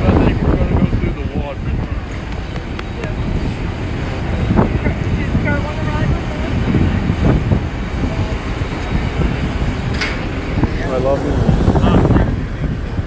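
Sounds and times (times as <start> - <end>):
engine rumble: 0.0 - 13.0.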